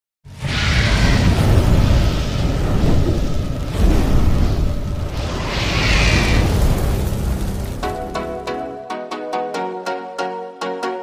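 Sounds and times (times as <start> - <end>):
deep continuous rumbling: 0.3 - 8.2
steady hiss: 1.5 - 8.0.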